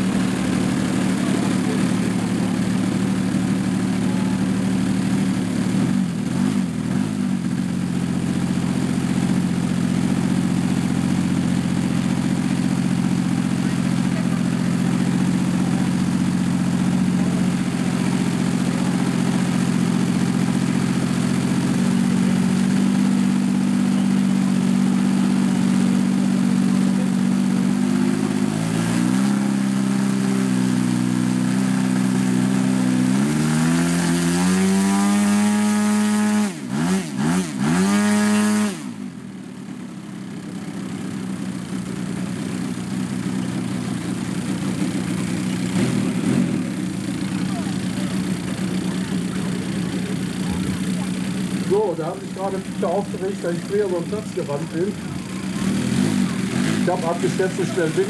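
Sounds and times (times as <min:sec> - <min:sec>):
model plane engine idling: 0:00.0 - 0:58.0.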